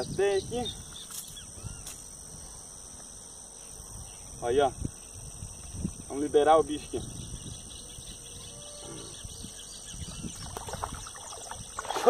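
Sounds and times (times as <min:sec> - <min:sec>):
faint bird calls: 0:00.0 - 0:02.7, 0:06.9 - 0:12.0
insects chirring: 0:00.0 - 0:12.0
fish splashing into water: 0:10.4 - 0:12.0.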